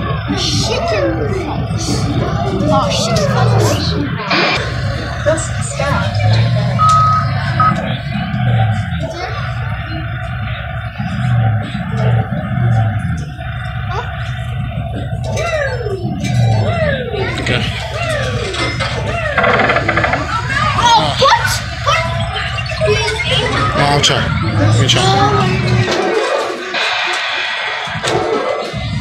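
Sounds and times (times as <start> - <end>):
people's voices: 0.0 - 29.0.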